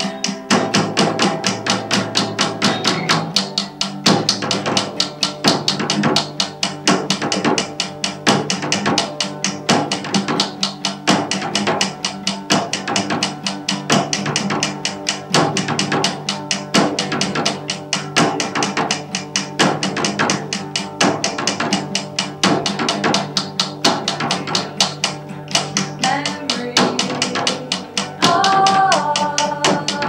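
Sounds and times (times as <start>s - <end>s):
acoustic guitar strumming: 0.0s - 30.0s
drum beaten with sticks: 0.0s - 30.0s.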